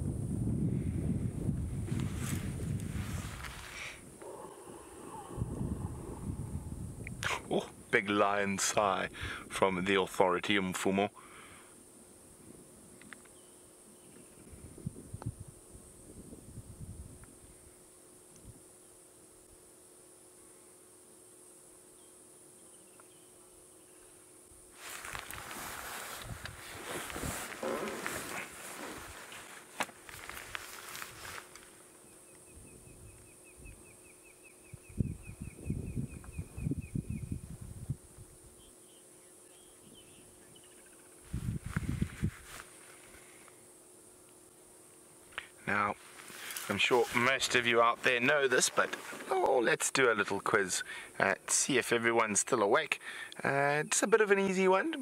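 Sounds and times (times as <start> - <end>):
night insects droning: 0.0 - 55.0
rustling noise: 1.5 - 4.1, 24.7 - 32.0, 41.2 - 43.5, 45.9 - 49.4.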